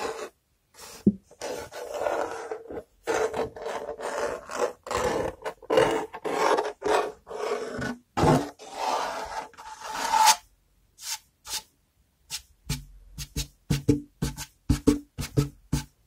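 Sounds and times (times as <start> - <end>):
scratching on hard object: 0.0 - 10.4.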